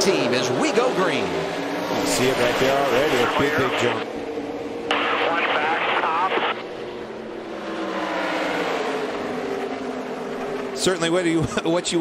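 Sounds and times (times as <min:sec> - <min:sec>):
race cars at full throttle: 0:00.0 - 0:12.0
voice over team radio: 0:03.0 - 0:04.1, 0:04.9 - 0:06.6.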